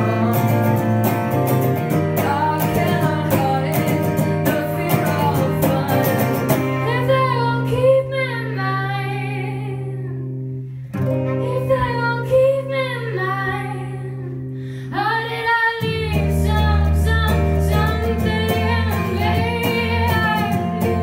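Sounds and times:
woman singing: 0:00.0 - 0:10.4, 0:11.2 - 0:21.0
acoustic guitar chords: 0:00.0 - 0:21.0.

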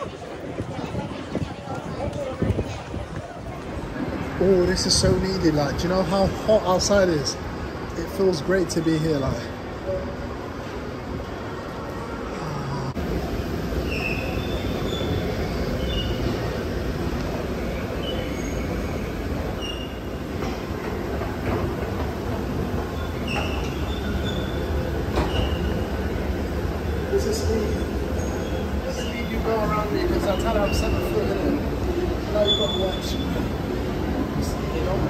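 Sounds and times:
short high squeaks: 0:13.8 - 0:16.3, 0:19.6 - 0:20.2, 0:23.0 - 0:25.8.

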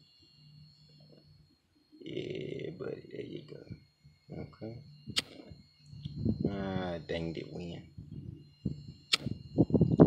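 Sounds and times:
wind on microphone: 0:06.0 - 0:06.8, 0:07.8 - 0:10.0.

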